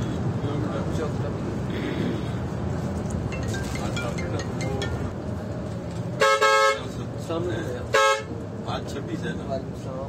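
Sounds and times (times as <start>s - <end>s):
bus engine and road noise: 0.0s - 10.0s
bus horn blast: 6.2s - 7.0s, 7.9s - 8.4s.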